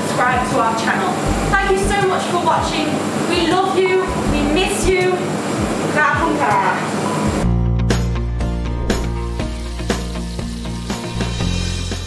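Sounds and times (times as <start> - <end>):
woman speaking: 0.0 - 5.3, 5.9 - 7.0
steady background hum: 0.0 - 7.5.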